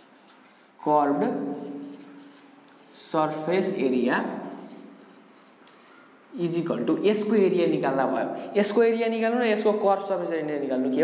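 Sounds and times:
marker writing on whiteboard: 0:00.0 - 0:07.4.

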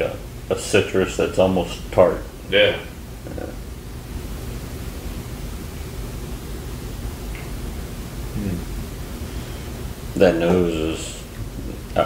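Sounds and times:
low hum: 0:00.0 - 0:12.0
room hiss: 0:00.0 - 0:12.0
man's low vocal sound: 0:03.2 - 0:03.6, 0:08.3 - 0:08.8.

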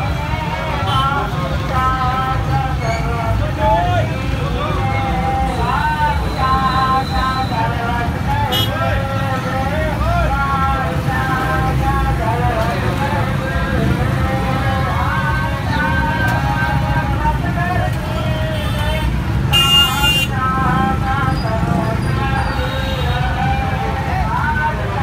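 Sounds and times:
traffic engines running: 0:00.0 - 0:25.0
voices: 0:00.0 - 0:25.0
vehicle horn: 0:08.5 - 0:08.8, 0:18.5 - 0:20.4.

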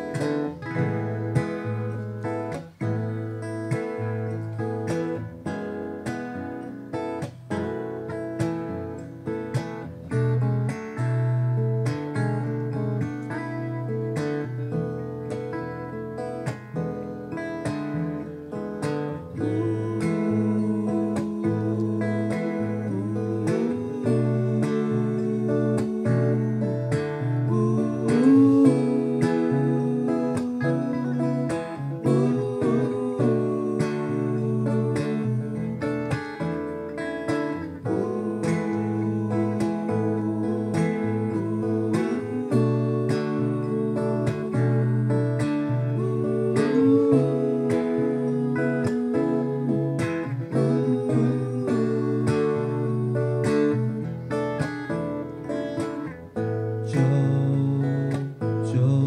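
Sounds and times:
acoustic guitars strummed and picked: 0:00.0 - 0:59.0
man singing: 0:19.1 - 0:36.5, 0:37.2 - 0:54.6, 0:56.7 - 0:59.0.

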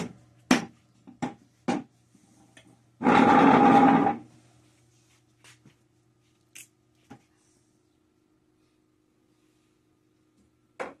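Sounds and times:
wooden chair legs scraping floor: 0:03.0 - 0:04.2.

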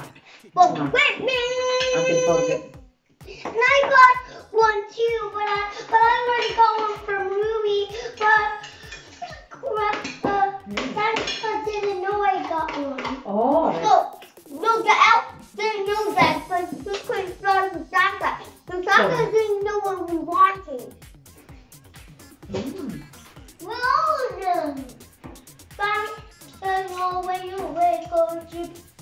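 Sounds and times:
music with quick steady beat: 0:00.0 - 0:29.0
children talking: 0:03.5 - 0:21.0, 0:23.6 - 0:25.2, 0:25.8 - 0:28.8
high voice singing held notes: 0:21.2 - 0:23.2.

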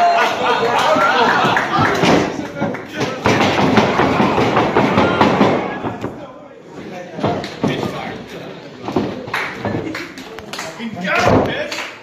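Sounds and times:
people shouting in a hall: 0:00.0 - 0:06.1.

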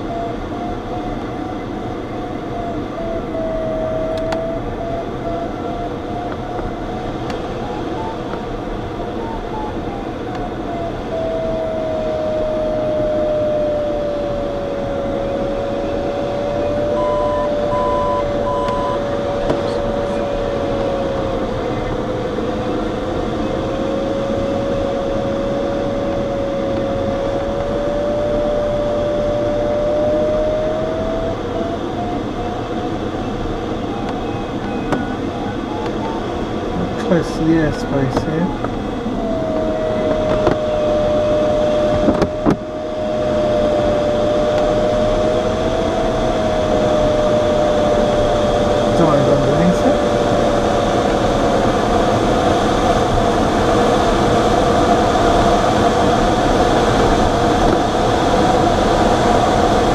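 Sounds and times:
variometer tone and beeps: 0:14.2 - 0:20.9.

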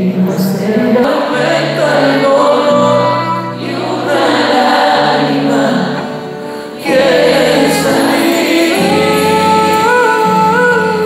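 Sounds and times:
guitar and keyboard: 0:00.0 - 0:11.0
voices singing together: 0:00.2 - 0:11.0.

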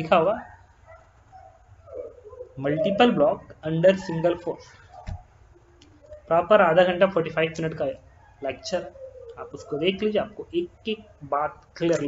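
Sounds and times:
person speaking: 0:00.0 - 0:00.5, 0:02.6 - 0:04.8, 0:06.0 - 0:12.0
high-pitched yelp: 0:00.2 - 0:06.8, 0:07.8 - 0:12.0.

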